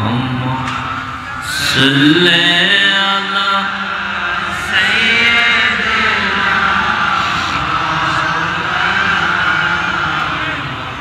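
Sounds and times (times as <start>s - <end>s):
man chanting into a microphone: 0.0s - 0.8s, 1.4s - 11.0s.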